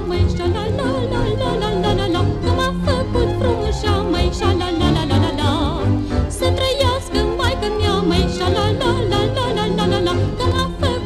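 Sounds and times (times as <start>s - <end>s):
folk orchestra with pulsing bass: 0.0s - 11.0s
woman singing ornamented melody: 0.0s - 11.0s.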